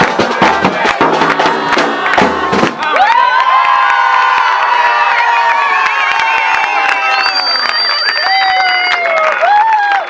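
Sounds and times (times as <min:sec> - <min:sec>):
crowd cheering and screaming: 0:00.8 - 0:10.0.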